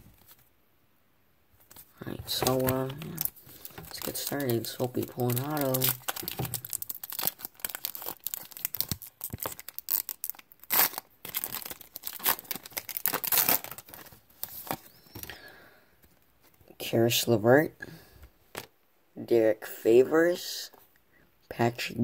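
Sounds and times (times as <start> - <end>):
wrapper crinkling and tearing: 1.8 - 15.0
wrapper ripping: 2.0 - 14.8.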